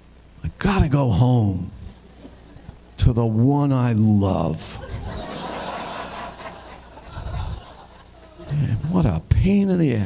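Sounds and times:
audience laughing softly: 4.7s - 9.0s.

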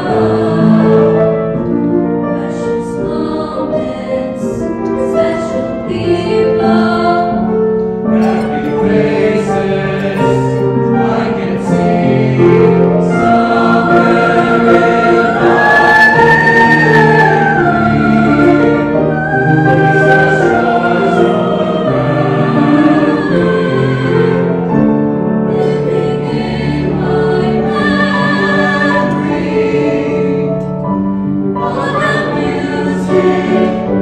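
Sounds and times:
mixed choir singing chords: 0.0s - 34.0s.

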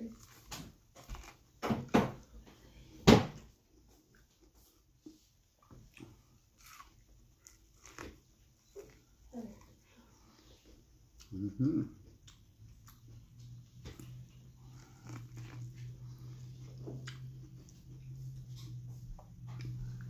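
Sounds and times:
person chewing corn on the cob: 0.0s - 1.6s, 3.7s - 11.4s, 12.0s - 20.0s.

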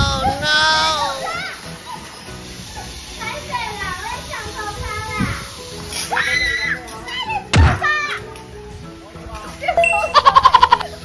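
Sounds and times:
voices calling out: 0.0s - 2.2s
music: 0.0s - 11.0s.

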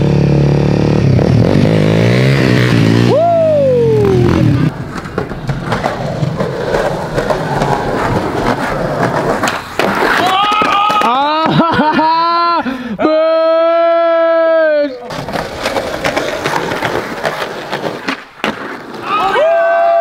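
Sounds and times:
dirt bike engine revving past: 0.0s - 4.7s
skateboard rolling on rough pavement: 4.0s - 11.7s, 15.0s - 20.0s.

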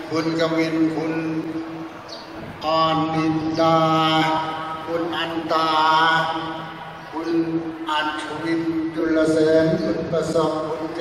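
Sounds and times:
man chanting names: 2.6s - 11.0s.

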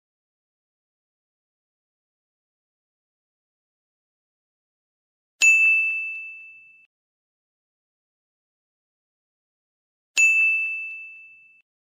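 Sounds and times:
bright bell chime: 5.4s - 6.9s, 10.2s - 11.6s.

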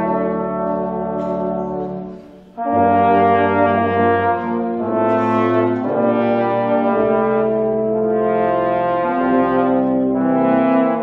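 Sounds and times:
brass ensemble playing carol: 0.0s - 11.0s.

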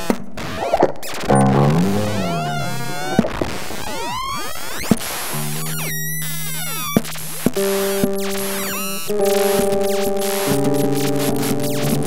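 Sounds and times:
held electronic tones: 1.3s - 3.4s
electronic pitch sweeps: 1.3s - 4.0s.

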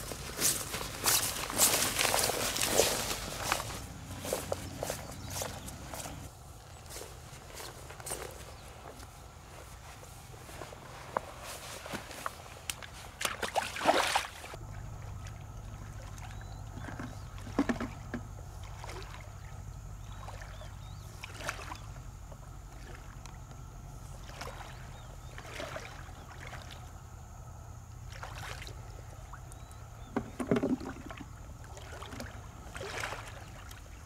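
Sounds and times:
water sloshing and splashing: 0.0s - 6.3s, 10.7s - 27.0s, 28.0s - 34.0s
low background rumble: 14.5s - 25.4s.

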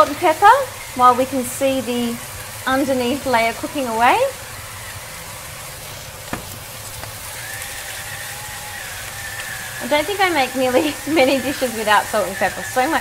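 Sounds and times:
chicken sizzling in frying pan: 0.0s - 13.0s.

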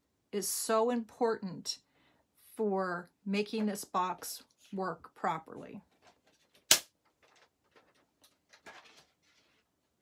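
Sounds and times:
paper rustling: 5.9s - 10.0s.

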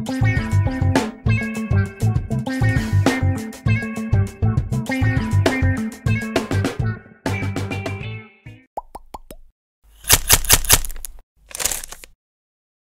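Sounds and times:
guitar outro music: 0.0s - 8.1s.

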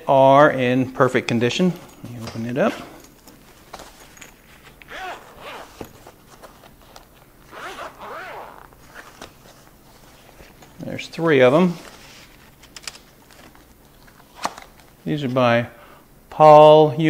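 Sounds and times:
zipper pulled open: 4.8s - 5.9s, 7.5s - 9.1s.

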